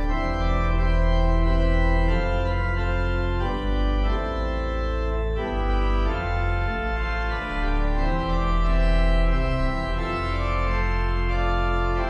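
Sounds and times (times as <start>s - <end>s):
slow organ chords: 0.0s - 12.0s.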